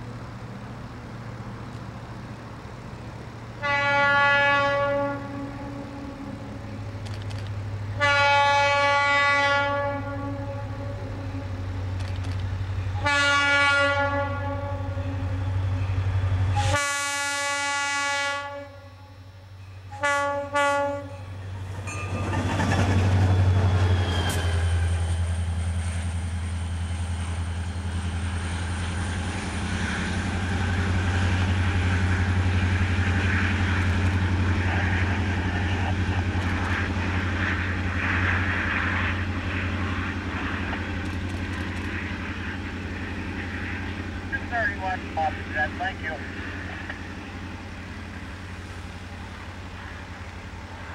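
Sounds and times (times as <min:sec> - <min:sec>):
locomotive engine rumbling: 0:00.0 - 0:50.9
locomotive horn blasts: 0:03.6 - 0:06.7, 0:08.0 - 0:11.8, 0:13.0 - 0:15.6, 0:16.5 - 0:19.2, 0:19.9 - 0:21.3.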